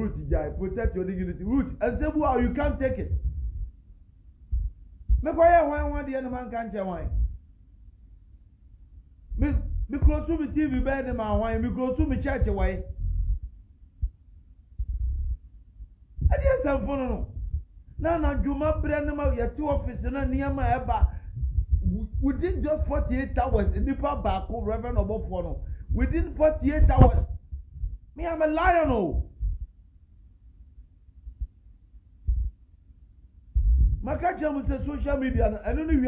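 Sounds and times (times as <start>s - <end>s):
low rumble: 3.0s - 3.8s, 4.5s - 5.3s, 7.0s - 7.4s, 9.3s - 15.5s, 16.2s - 28.2s, 29.2s - 29.8s, 33.6s - 34.1s.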